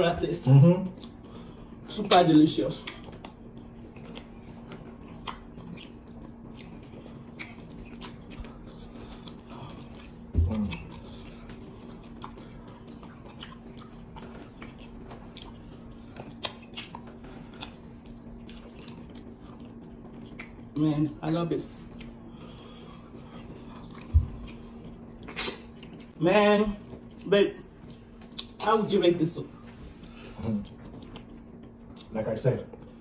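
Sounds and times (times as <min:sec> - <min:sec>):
close chewing of soft food: 0:00.4 - 0:26.2, 0:26.8 - 0:28.8, 0:29.9 - 0:33.0.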